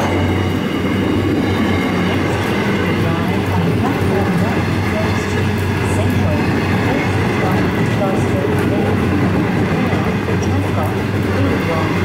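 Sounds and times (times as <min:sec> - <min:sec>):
freight train rolling past: 0:00.0 - 0:12.0.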